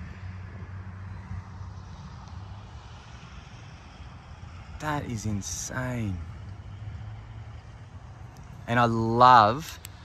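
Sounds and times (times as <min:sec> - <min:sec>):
faint outdoor background noise: 0:00.0 - 0:10.0
vehicle engine humming: 0:00.0 - 0:10.0
man's voice: 0:04.8 - 0:06.2, 0:08.6 - 0:09.8.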